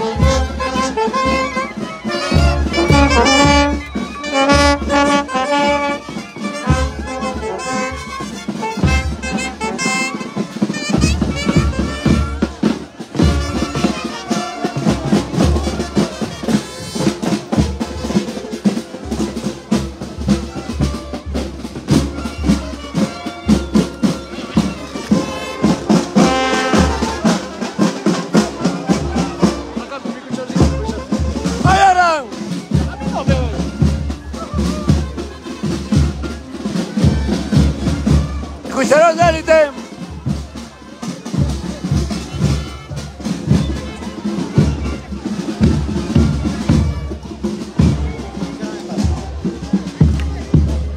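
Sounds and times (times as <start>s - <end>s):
brass band playing a march: 0.0s - 50.9s
crowd voices: 0.0s - 50.9s.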